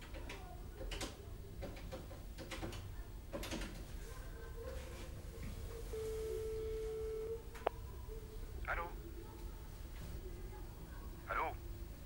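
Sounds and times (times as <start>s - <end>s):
telephone line tone: 5.9s - 7.5s.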